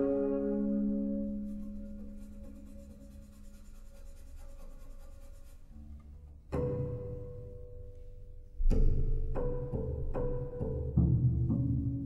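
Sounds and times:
low bowed string note: 0:00.0 - 0:03.1
soft fast pulse of noisy strokes: 0:01.1 - 0:05.7.

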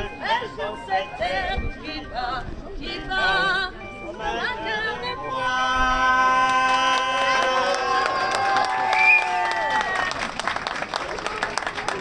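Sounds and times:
crowd clapping and applause: 0:06.3 - 0:12.0.

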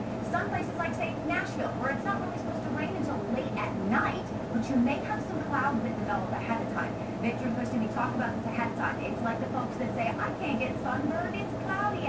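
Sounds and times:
woman speaking through tv speaker: 0:00.0 - 0:12.0.

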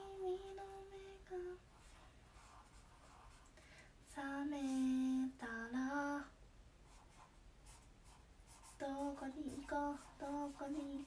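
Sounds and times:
pen scratching on paper: 0:01.7 - 0:03.5, 0:06.9 - 0:11.0.

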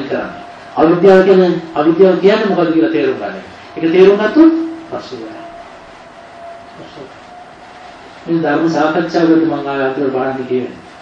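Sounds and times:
faint steady tone: 0:00.0 - 0:11.0.

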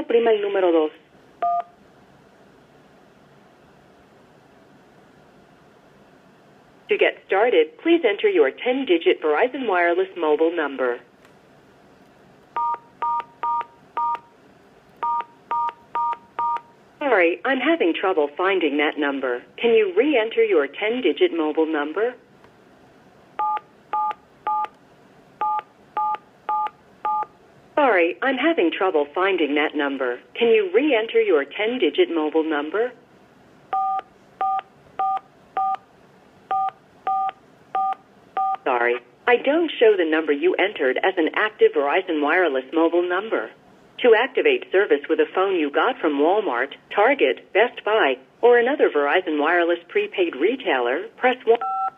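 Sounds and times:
phone keypad tones: 0:12.6 - 0:14.3, 0:15.0 - 0:16.7, 0:23.4 - 0:24.7, 0:33.7 - 0:35.8, 0:36.5 - 0:38.6.

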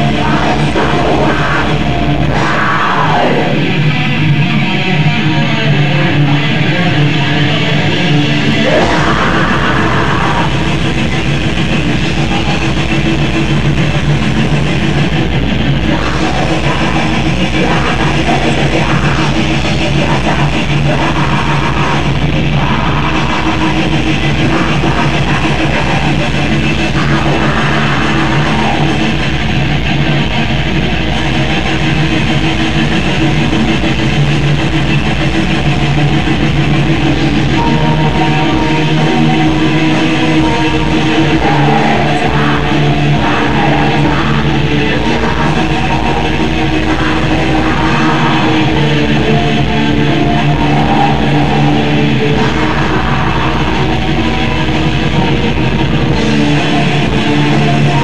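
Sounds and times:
distorted electric guitars: 0:00.0 - 0:58.0
fast drums: 0:00.0 - 0:58.0.

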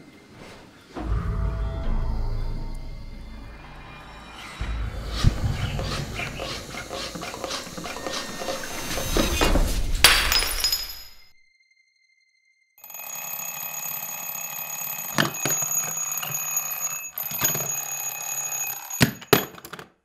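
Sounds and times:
loud crash: 0:01.0 - 0:06.8, 0:08.7 - 0:11.3
steady ringing: 0:12.8 - 0:19.6.

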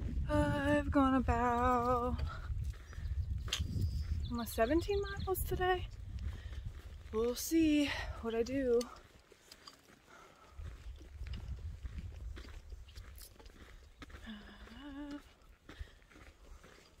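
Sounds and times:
low microphone rumble: 0:00.0 - 0:08.4
footsteps on dirt trail: 0:00.0 - 0:17.0
person humming: 0:14.2 - 0:15.4.

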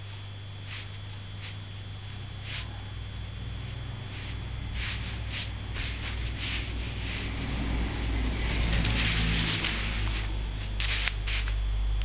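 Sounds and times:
steady low hum: 0:00.0 - 0:12.0
brush stroking on paper: 0:00.7 - 0:01.6, 0:02.4 - 0:02.8, 0:04.0 - 0:11.6.

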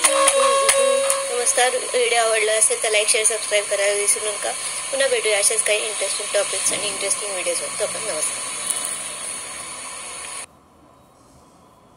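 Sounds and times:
steady recording hiss: 0:00.0 - 0:11.9.

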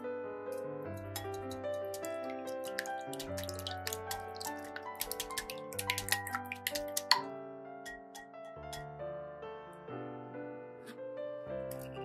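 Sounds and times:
piano background music: 0:00.0 - 0:12.0
whisk beating eggs in glass bowl: 0:00.9 - 0:07.2.

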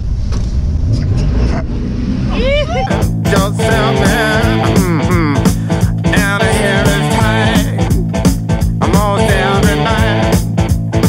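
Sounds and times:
car engine and road rumble: 0:00.0 - 0:05.0
person's voice: 0:02.4 - 0:08.1
rock music with drum beat: 0:02.9 - 0:11.0.

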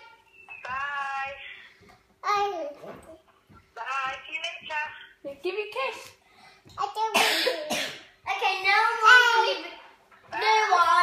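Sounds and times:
toddler cough-like bursts: 0:07.1 - 0:08.1.

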